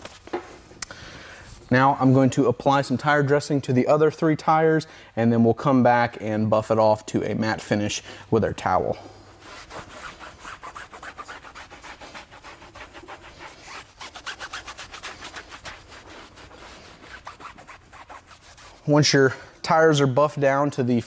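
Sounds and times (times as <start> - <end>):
towel rubbing on tire: 9.4 - 19.0.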